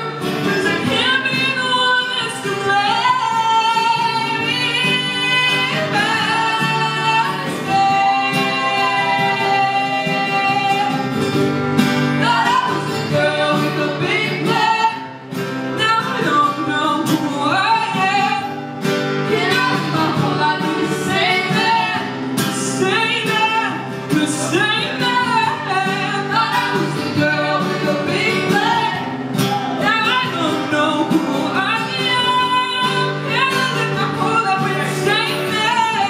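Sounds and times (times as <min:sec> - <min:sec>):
woman singing into a microphone: 0:00.0 - 0:11.4, 0:12.0 - 0:36.0
strummed acoustic guitars: 0:00.0 - 0:36.0.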